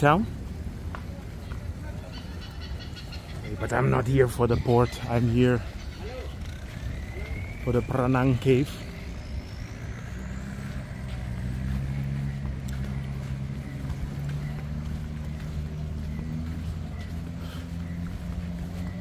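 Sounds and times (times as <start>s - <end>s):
tractor engine running: 2.6s - 19.0s.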